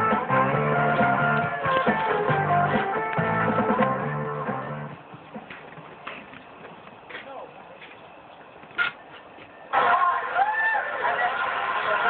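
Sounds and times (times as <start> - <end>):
faint voices: 5.2 - 8.6.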